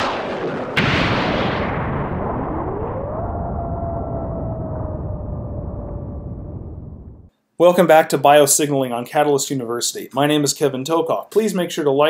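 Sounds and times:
thunder cracks with rumbling tail: 0.0 - 7.3.

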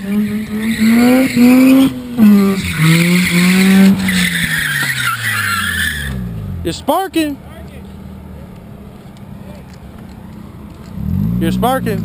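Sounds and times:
tyres squealing: 0.0 - 6.3
rotary engine revving high: 0.0 - 6.6, 10.8 - 12.0.

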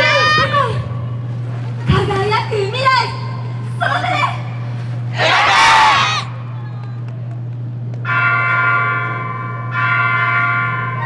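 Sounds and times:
steady low hum: 0.0 - 11.0
shout-like burst bending in pitch: 5.2 - 6.4.

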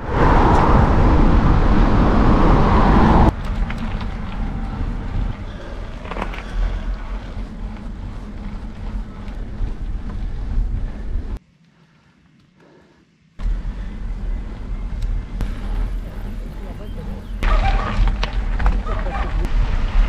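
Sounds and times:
wind rushing over microphone: 0.0 - 11.4
bike tyres rolling on asphalt: 0.0 - 12.3, 13.4 - 20.0.

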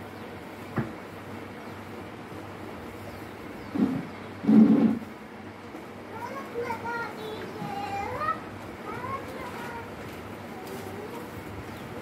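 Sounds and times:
high childlike voice: 6.1 - 11.7.

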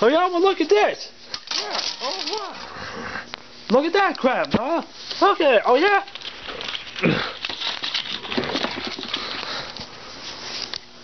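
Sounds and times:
person breathing noisily: 2.6 - 3.4, 9.0 - 9.9.

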